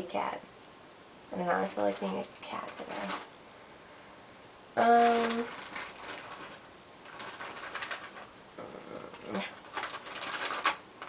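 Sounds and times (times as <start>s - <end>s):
small objects rustling and clicking: 1.7s - 3.3s, 4.8s - 8.3s, 9.0s - 11.0s.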